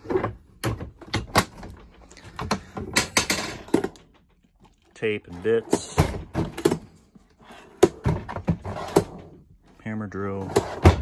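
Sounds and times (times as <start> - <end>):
tool box contents rattling: 0.0 - 7.2.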